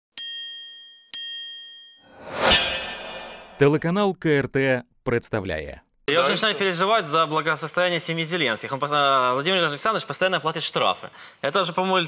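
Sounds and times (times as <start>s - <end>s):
bright bell-like dings: 0.2s - 2.1s.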